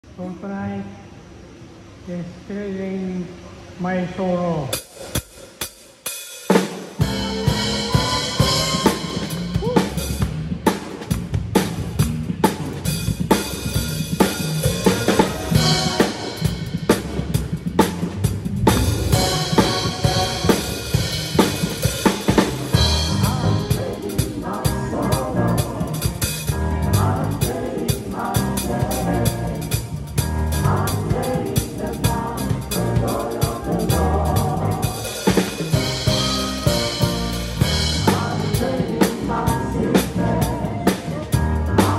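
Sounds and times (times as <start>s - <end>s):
drum kit playing a beat: 4.8s - 41.9s
keyboard: 7.0s - 10.3s, 13.5s - 41.9s
bass guitar: 7.0s - 41.9s.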